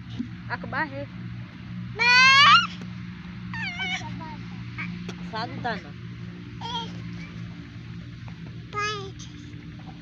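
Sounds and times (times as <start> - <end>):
child squealing: 2.0 - 2.8, 3.5 - 4.2
child wavering cry: 2.0 - 2.8, 3.5 - 4.2.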